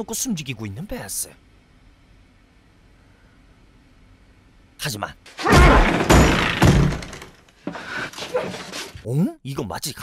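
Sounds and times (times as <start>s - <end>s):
stall door thuds and crash: 5.4s - 7.4s
scuffling struggle: 7.6s - 9.0s.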